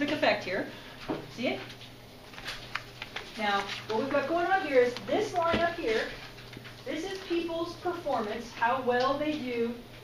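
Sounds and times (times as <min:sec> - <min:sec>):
lecturer talking: 0:03.4 - 0:06.2, 0:06.8 - 0:09.8.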